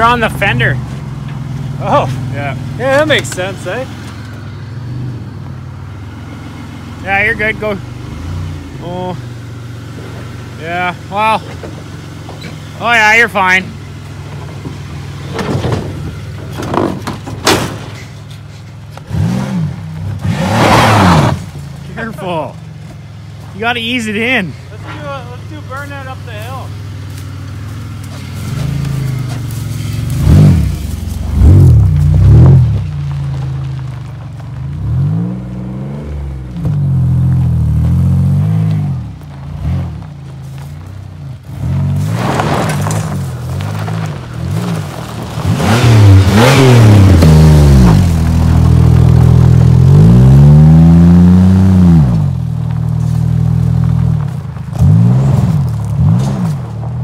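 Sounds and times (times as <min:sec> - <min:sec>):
car engine revving hard: 0:19.1 - 0:21.5, 0:29.8 - 0:32.8, 0:41.5 - 0:52.4.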